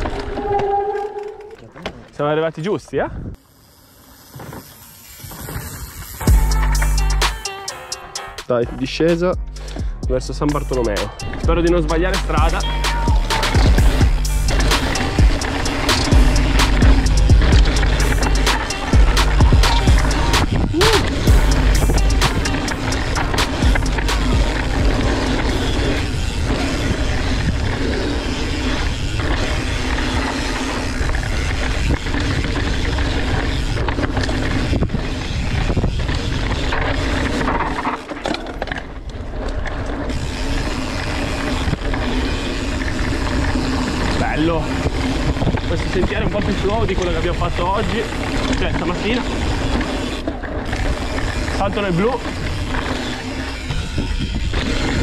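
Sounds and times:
mountain bike rattling over trail: 0.0s - 7.1s, 10.2s - 55.0s
background music with bass line: 6.3s - 25.9s.

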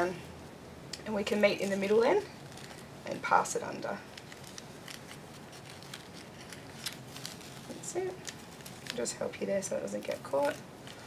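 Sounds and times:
fabric and tape rustling: 1.2s - 11.0s.

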